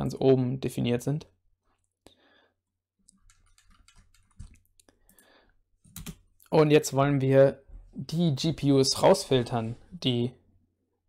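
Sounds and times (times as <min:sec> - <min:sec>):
computer mouse clicks: 0:03.0 - 0:05.2, 0:05.9 - 0:06.3.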